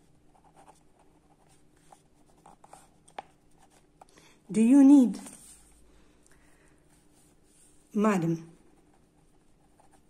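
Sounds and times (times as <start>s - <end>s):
ballpoint pen scratching on paper: 0.0s - 3.9s, 8.6s - 10.0s.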